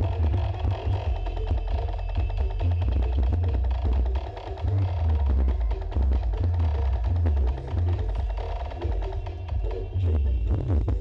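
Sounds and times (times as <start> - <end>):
booming bass line: 0.0 - 11.0
fast percussion beat: 0.0 - 11.0
loud dance music: 0.0 - 11.0.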